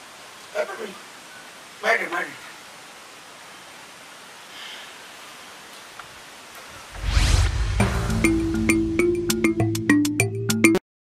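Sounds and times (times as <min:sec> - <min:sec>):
background hiss: 0:00.0 - 0:10.0
faint brief sound: 0:06.8 - 0:08.3.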